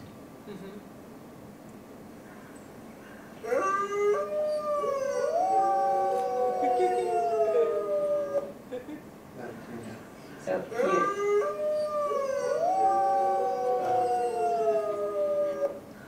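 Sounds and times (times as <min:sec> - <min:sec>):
wolves howling through speakers: 0:03.4 - 0:08.6, 0:10.7 - 0:16.0.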